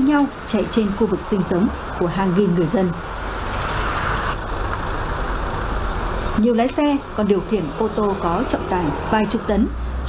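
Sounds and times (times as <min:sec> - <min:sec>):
dump trucks rumbling past: 0:00.0 - 0:10.0.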